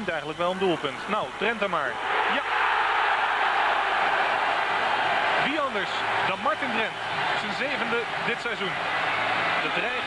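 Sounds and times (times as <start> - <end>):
stadium crowd cheering: 0.4 - 10.0.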